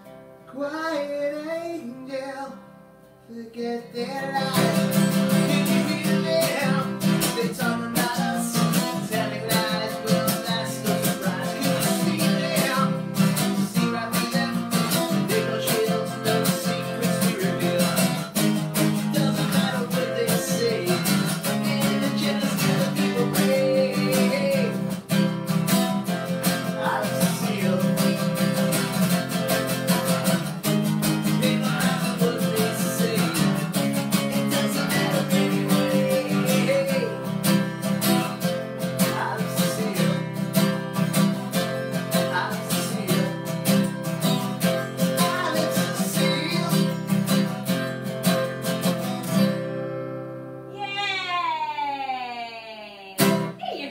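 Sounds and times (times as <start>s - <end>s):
acoustic guitar strumming: 0.0s - 50.8s, 53.2s - 53.6s
man singing: 0.5s - 2.6s, 3.2s - 25.2s, 26.0s - 48.0s.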